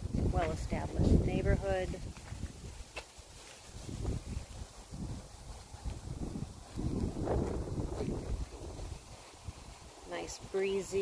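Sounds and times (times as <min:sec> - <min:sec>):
wind buffeting microphone: 0:00.0 - 0:03.0, 0:03.7 - 0:11.0.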